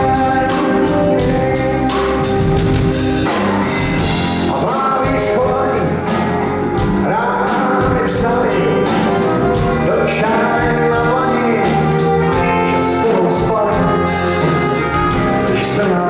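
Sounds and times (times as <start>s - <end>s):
blues-rock band playing live: 0.0s - 16.0s
man singing lead vocal: 0.0s - 16.0s.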